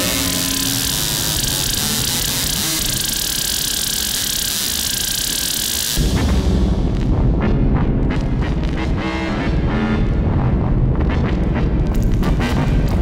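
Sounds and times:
hissing synthesizer noise wash: 0.0 - 6.0
pulsing low synthesizer rumble: 0.0 - 13.0.

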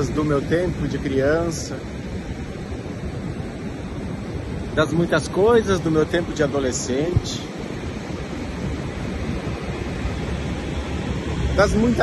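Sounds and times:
surf breaking on beach: 0.0 - 12.0
wind buffeting microphone: 0.0 - 12.0.

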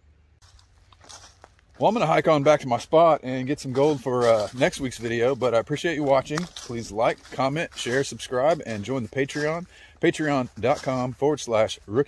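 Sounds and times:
footsteps crunching dry leaves: 0.4 - 12.0
man speaking: 1.8 - 12.0.

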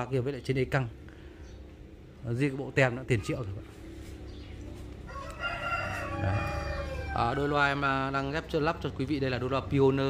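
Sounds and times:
long steady animal call: 5.5 - 7.2.

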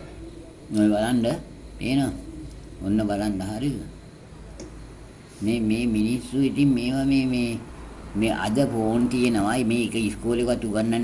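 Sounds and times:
man speaking: 0.2 - 4.0, 5.4 - 11.0.

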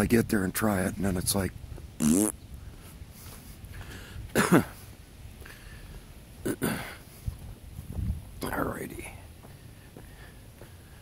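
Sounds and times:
footsteps on pavement: 1.6 - 2.0, 2.6 - 6.3, 7.0 - 11.0
man muttering: 2.0 - 2.3, 4.3 - 4.8, 6.4 - 7.0.

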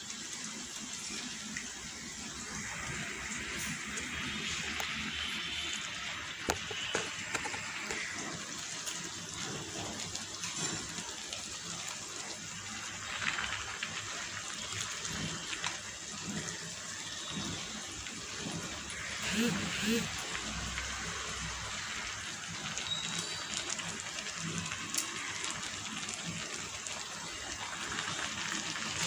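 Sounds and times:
steady cooking hiss: 0.0 - 29.0.

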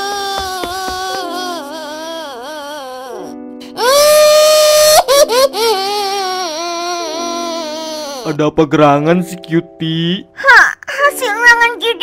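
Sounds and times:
girl crying: 0.0 - 8.4.

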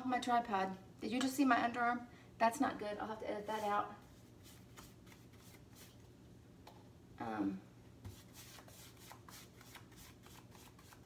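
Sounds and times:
paintbrush swishes: 3.4 - 6.0.

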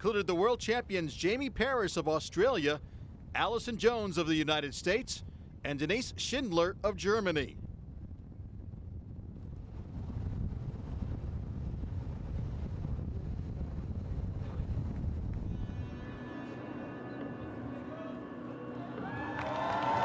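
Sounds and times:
wind noise on microphone: 0.0 - 17.6.

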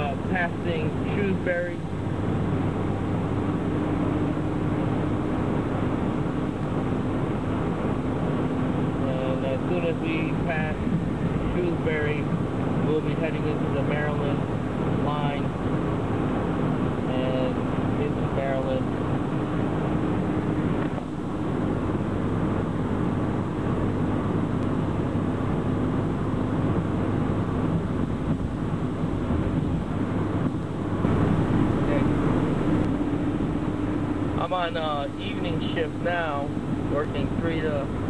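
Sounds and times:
air rushing from vent: 0.0 - 38.0
car engine and road noise: 0.0 - 38.0.

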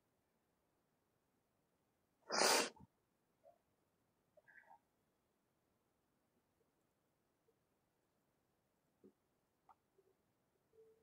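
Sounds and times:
short sharp burst of breath: 2.3 - 2.8.

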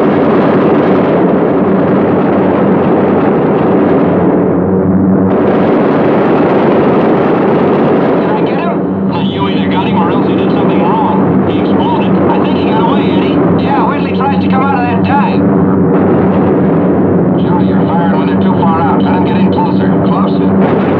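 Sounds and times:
aircraft engines droning: 0.7 - 20.6
voices over intercom: 8.2 - 15.4, 17.4 - 20.6.

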